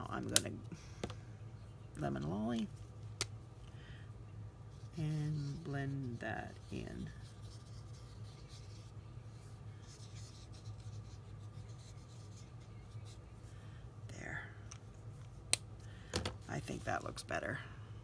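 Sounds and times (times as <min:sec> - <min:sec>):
steady low hum: 0:00.0 - 0:18.0
marker scratching on cardstock: 0:04.8 - 0:09.0, 0:09.8 - 0:13.3.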